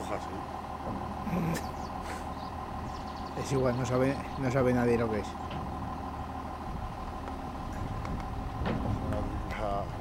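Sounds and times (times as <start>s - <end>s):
high-pitched machinery hum: 0.0s - 10.0s
vehicle engine idling: 0.0s - 10.0s.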